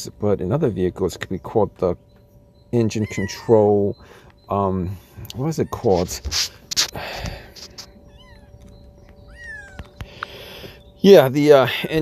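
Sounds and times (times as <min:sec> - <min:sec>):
faint steady hum: 0:00.0 - 0:12.0
high animal calls: 0:02.9 - 0:04.2, 0:07.7 - 0:10.2.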